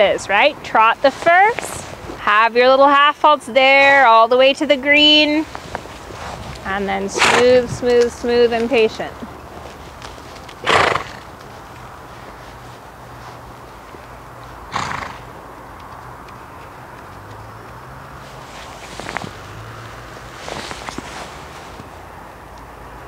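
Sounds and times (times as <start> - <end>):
hoofbeats on dirt: 5.4 - 22.0
horse snorting: 7.1 - 7.6, 10.6 - 11.3, 14.7 - 15.3.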